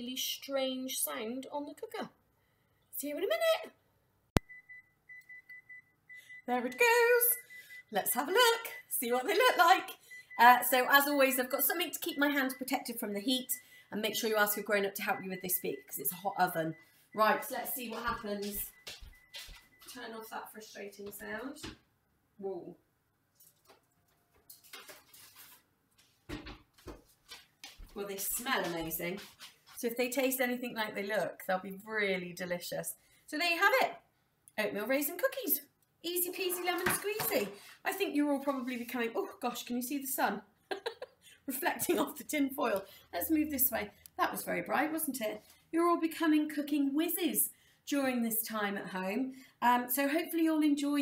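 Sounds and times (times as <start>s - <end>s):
knocks and thuds: 26.3s - 27.0s.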